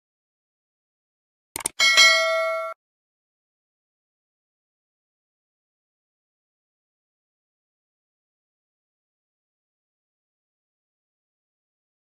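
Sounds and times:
quick clicks: 0:01.6 - 0:01.8
bright bell ding: 0:01.8 - 0:02.8.

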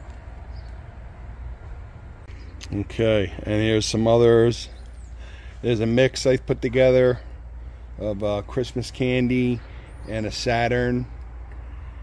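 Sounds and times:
outdoor background rumble: 0:00.0 - 0:12.0.

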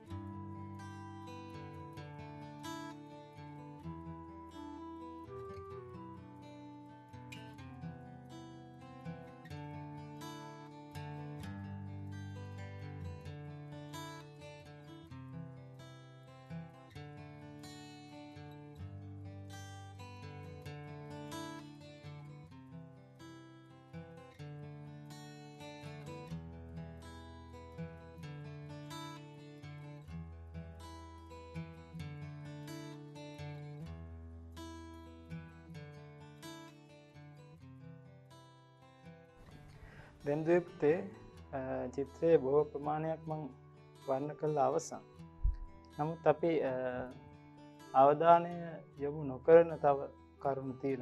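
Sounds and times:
plucked acoustic guitar music: 0:00.0 - 0:51.0.

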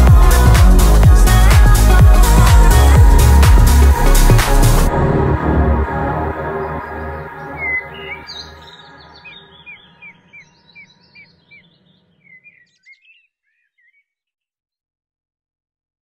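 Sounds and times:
song music: 0:00.0 - 0:10.5
songbird chirping: 0:05.8 - 0:14.5.

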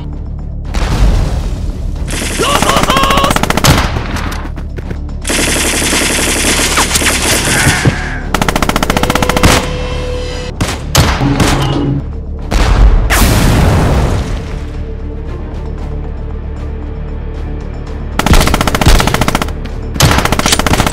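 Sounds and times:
machine-gun fire: 0:05.2 - 0:07.6, 0:08.3 - 0:09.7, 0:18.2 - 0:20.9.

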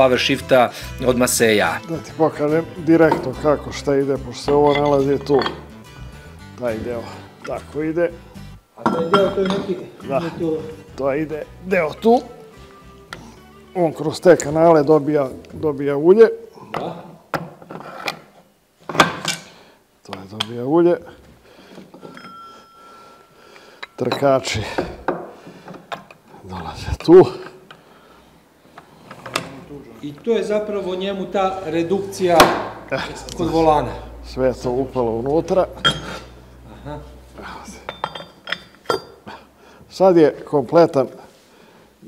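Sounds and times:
steel parts clinking: 0:04.4 - 0:05.7, 0:22.0 - 0:22.8, 0:37.7 - 0:39.2.

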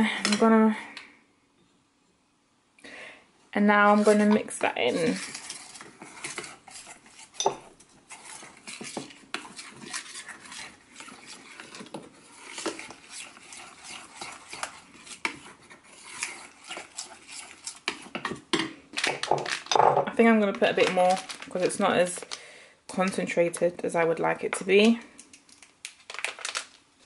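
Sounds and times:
metal spoon scraping a steel bowl: 0:03.8 - 0:18.2.

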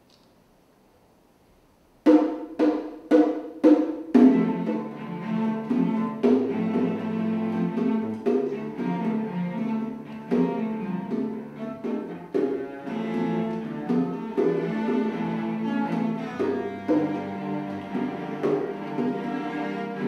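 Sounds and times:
cello quartet playing tango: 0:03.6 - 0:20.0.

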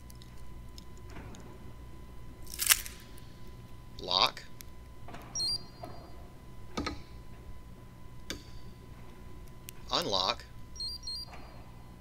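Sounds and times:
low electrical hum: 0:00.0 - 0:12.0
crunchy handling noise: 0:02.4 - 0:03.8.

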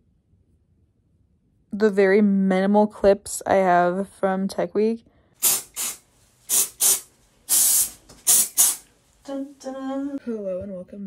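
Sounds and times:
spray bottle spraying: 0:05.4 - 0:08.9.

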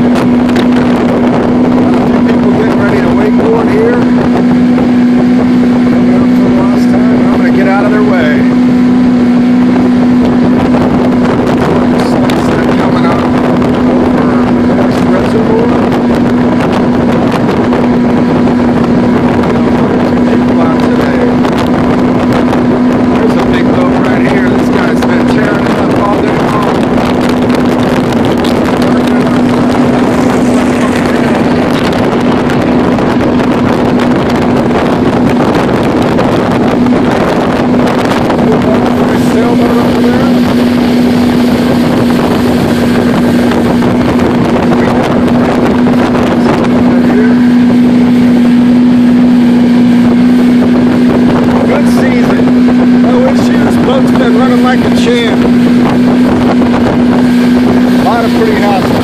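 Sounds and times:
motorboat engine humming: 0:00.0 - 0:59.0
water rushing past hull: 0:00.0 - 0:59.0
wind on microphone: 0:00.0 - 0:59.0.

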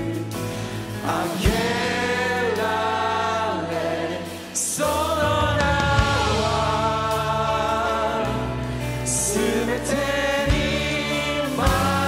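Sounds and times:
worship band with singers: 0:00.0 - 0:12.0.

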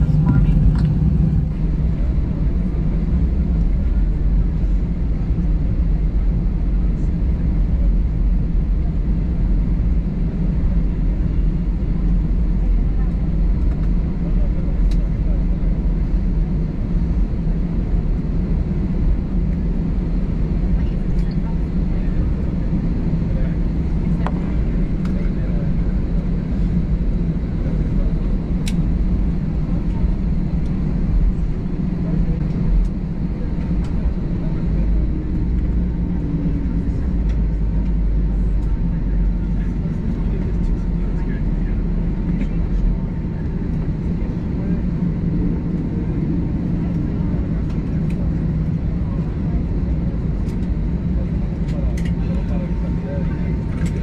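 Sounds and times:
airplane engines idling: 0:00.0 - 0:54.0.

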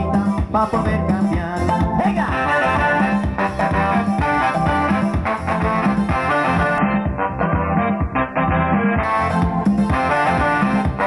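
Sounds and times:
upbeat live band music: 0:00.0 - 0:11.0.

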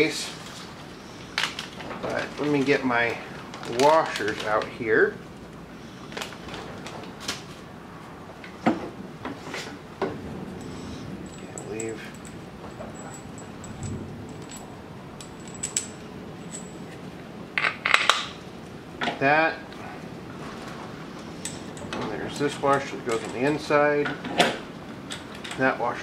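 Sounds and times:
metal washers and bolt clinking: 0:10.6 - 0:18.4, 0:21.4 - 0:25.8.

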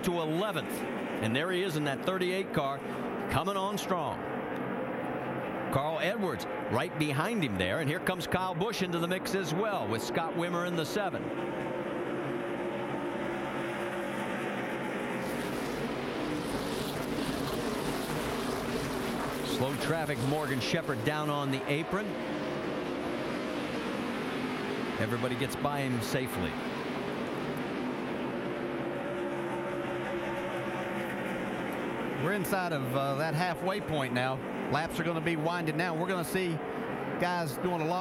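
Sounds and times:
race car engines droning: 0:00.0 - 0:38.0.

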